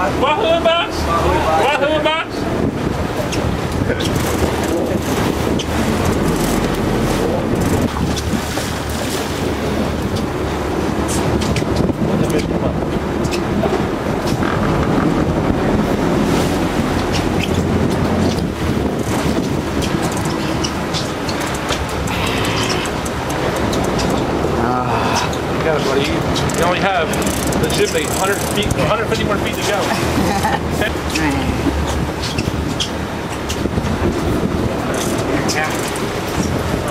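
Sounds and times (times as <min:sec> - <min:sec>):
boat engine running: 0:00.0 - 0:36.9
water rushing past hull: 0:00.0 - 0:36.9
wind buffeting microphone: 0:00.0 - 0:36.9.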